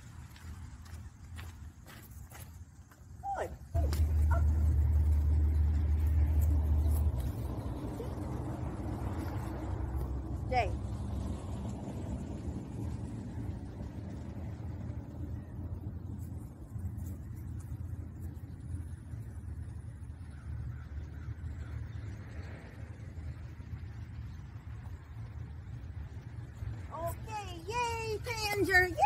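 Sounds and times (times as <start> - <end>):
low steady rumble: 0.0 - 29.0.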